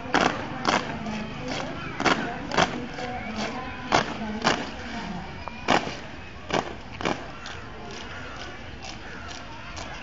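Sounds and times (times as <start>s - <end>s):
boots stamping on brick paving: 0.0s - 10.0s
faint crowd chatter: 0.0s - 10.0s.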